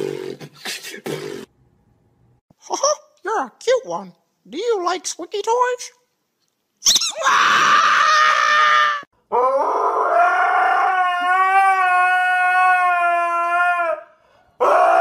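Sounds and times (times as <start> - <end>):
husky howling: 7.6 - 15.0.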